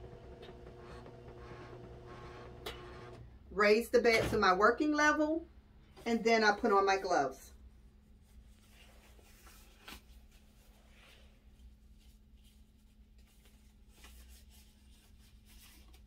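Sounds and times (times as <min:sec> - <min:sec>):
gloves rustling: 0:07.8 - 0:16.0.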